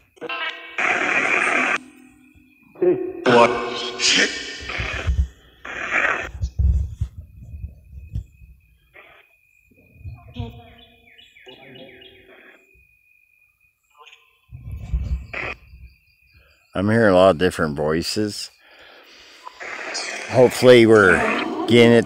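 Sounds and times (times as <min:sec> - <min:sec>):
birds chirping: 0:00.0 - 0:22.0
high insect trill: 0:00.0 - 0:22.0
garbled voice-like bursts: 0:02.8 - 0:06.4, 0:19.5 - 0:22.0.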